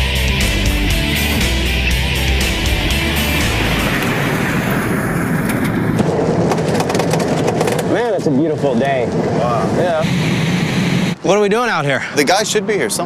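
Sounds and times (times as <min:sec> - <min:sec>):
rock music: 0:00.0 - 0:06.4
vehicle driving on a dirt track: 0:02.1 - 0:10.7.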